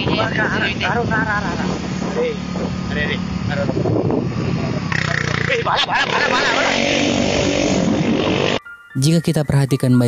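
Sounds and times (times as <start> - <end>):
men talking: 0.0 - 6.9
motorcycle engine humming: 0.0 - 8.8.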